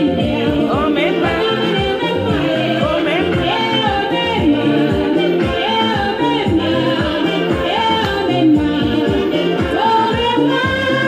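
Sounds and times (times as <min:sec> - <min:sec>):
song with singing and drums: 0:00.0 - 0:11.0.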